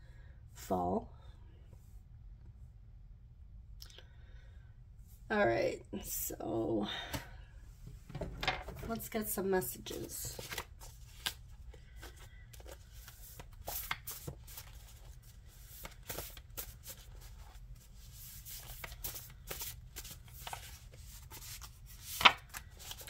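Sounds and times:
cards being shuffled: 0:09.8 - 0:23.0.

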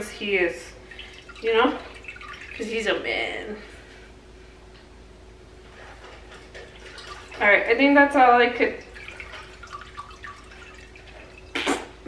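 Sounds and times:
juice dripping into a bowl: 0:00.8 - 0:02.8, 0:08.6 - 0:11.9.

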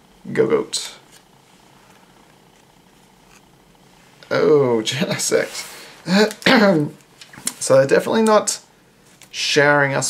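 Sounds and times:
trading cards sliding: 0:00.9 - 0:03.9.

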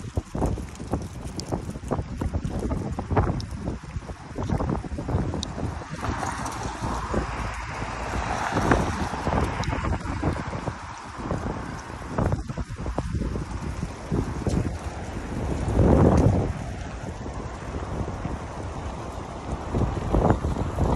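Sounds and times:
wind buffeting microphone: 0:00.0 - 0:20.9.

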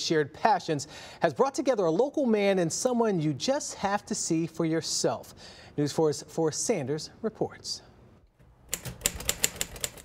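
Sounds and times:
typewriter key strikes: 0:08.7 - 0:10.0.

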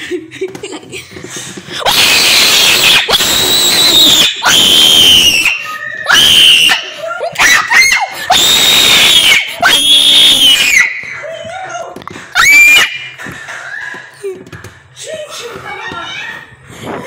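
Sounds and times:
high-pitched screaming: 0:01.8 - 0:11.1, 0:12.4 - 0:13.1.

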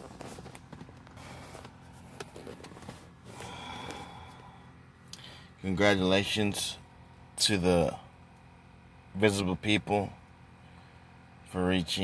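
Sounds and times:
man breathing out through nose: 0:03.2 - 0:05.6.

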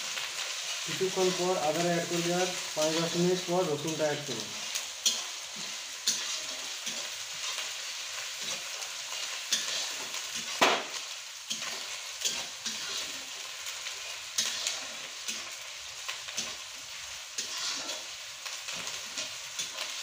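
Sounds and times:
onions sizzling in oil: 0:00.0 - 0:20.0
metal spatula scraping pan: 0:05.0 - 0:07.7, 0:08.3 - 0:10.6, 0:11.5 - 0:15.7, 0:17.3 - 0:19.9.

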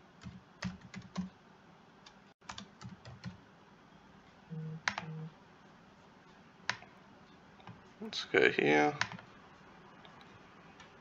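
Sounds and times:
computer keyboard keystrokes: 0:00.2 - 0:01.3, 0:02.4 - 0:03.4, 0:04.8 - 0:05.2, 0:09.0 - 0:09.3.

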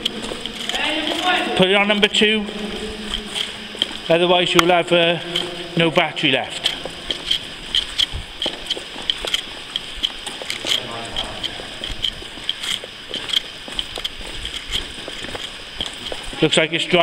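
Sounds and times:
footsteps on gritty floor: 0:00.0 - 0:17.0.

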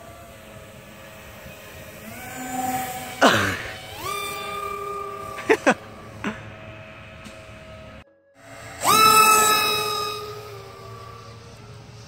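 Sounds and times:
electric motors and propellers whining: 0:00.0 - 0:12.0.

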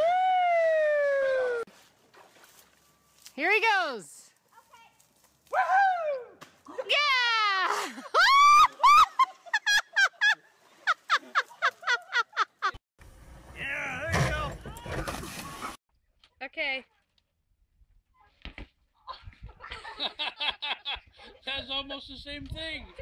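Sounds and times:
people laughing: 0:07.6 - 0:12.8, 0:19.1 - 0:21.4.

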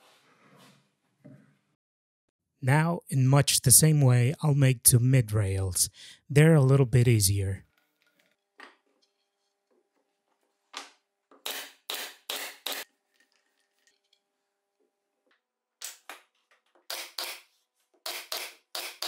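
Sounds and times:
air-powered nailer firing: 0:11.4 - 0:12.8, 0:16.9 - 0:19.0.

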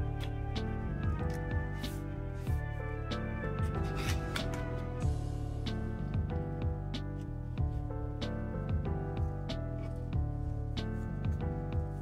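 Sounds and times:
background music with steady beat: 0:00.0 - 0:12.0.

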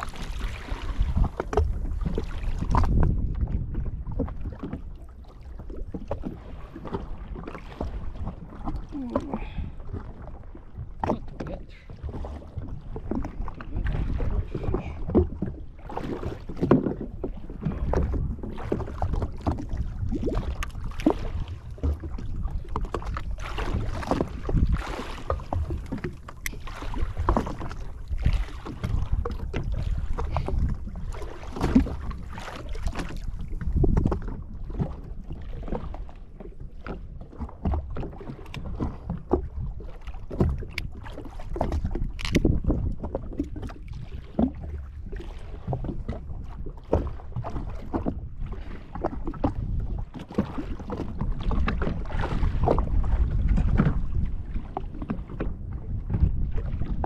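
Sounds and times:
water lapping against hull: 0:00.0 - 0:57.0
wind buffeting microphone: 0:00.0 - 0:57.0.

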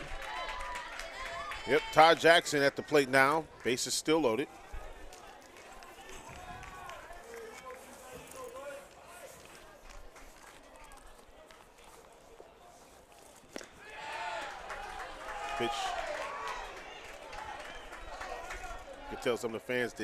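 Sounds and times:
fans shouting: 0:13.8 - 0:19.9.

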